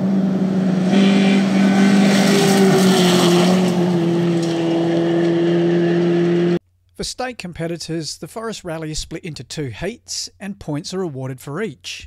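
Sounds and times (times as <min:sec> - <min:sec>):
rally car engine at high revs: 0:00.0 - 0:06.6.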